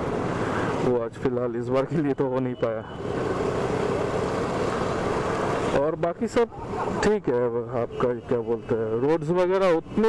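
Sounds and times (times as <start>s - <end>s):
scooter engine and road noise: 0.0s - 10.0s.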